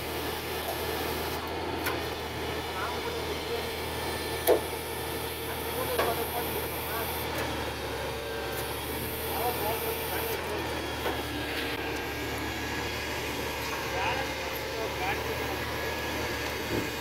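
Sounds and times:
truck engine running: 0.0 - 17.0.

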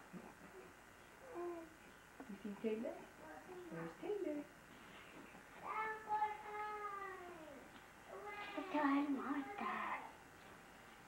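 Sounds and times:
baby babbling: 5.6 - 8.6.

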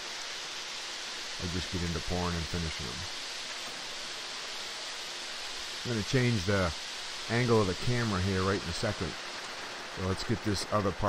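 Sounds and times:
steady rushing hiss: 0.0 - 11.0.

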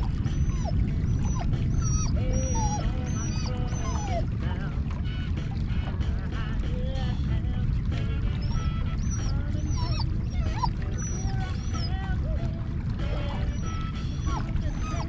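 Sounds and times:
steady low rumble: 0.0 - 15.0
animals squealing: 0.2 - 4.3, 8.4 - 12.0, 13.1 - 15.0.

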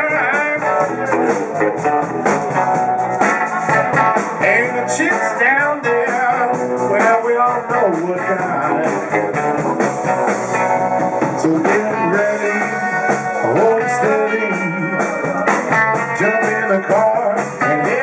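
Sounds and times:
blues band playing live: 0.0 - 18.0
electric guitar: 0.0 - 18.0.

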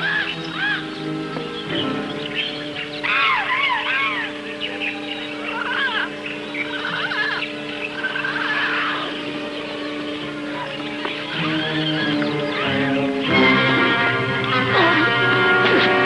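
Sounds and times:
bird chirps and whistles: 0.0 - 13.4
low held music tone: 0.0 - 16.0.

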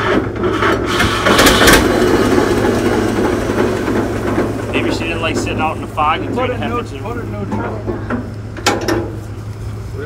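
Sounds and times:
low engine hum: 0.2 - 10.0.

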